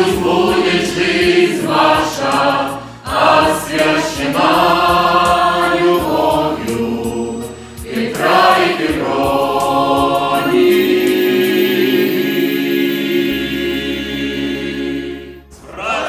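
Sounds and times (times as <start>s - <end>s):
mixed choir singing: 0.0s - 16.0s.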